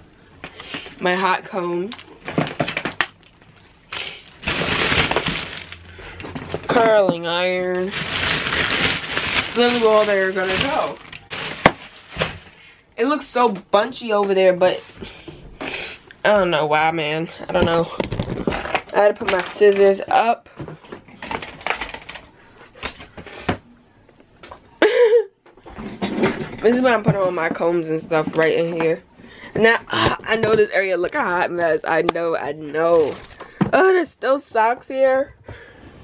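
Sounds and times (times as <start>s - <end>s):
plastic bag rustling: 1.9s - 12.8s, 32.9s - 33.6s.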